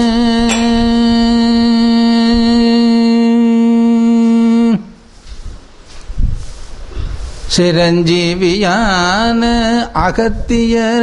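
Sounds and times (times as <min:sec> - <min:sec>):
man singing a long note: 0:00.0 - 0:05.0.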